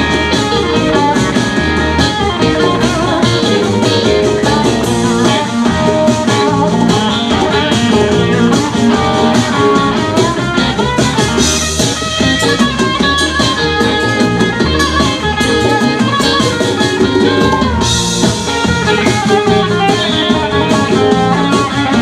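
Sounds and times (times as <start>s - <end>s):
drum kit: 0.0s - 22.0s
electric guitars: 0.0s - 22.0s
keyboards: 0.0s - 22.0s.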